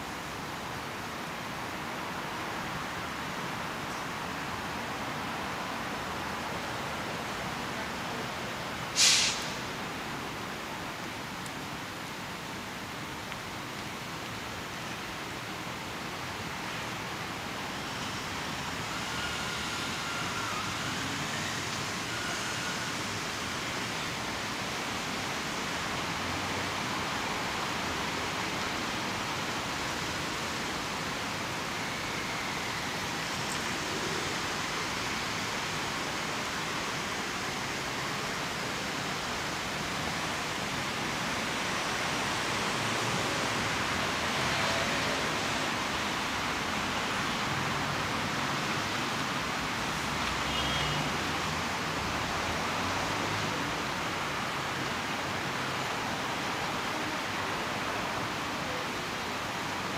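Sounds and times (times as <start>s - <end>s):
road traffic hiss: 0.0s - 59.9s.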